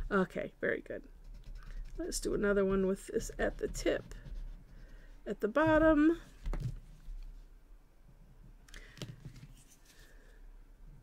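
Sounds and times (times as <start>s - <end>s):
drawing tool scratching paper: 1.2s - 5.3s.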